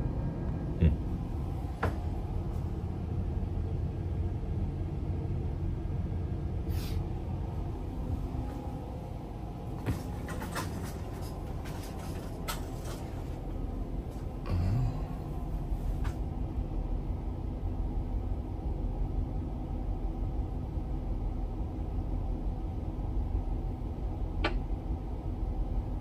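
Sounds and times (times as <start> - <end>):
diesel engines rumbling: 0.0 - 24.3.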